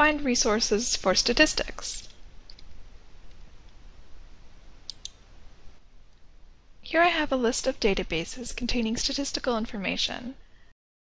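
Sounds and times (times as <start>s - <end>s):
low steady hiss: 0.0s - 10.8s
computer mouse clicking: 2.0s - 2.7s, 4.9s - 5.2s.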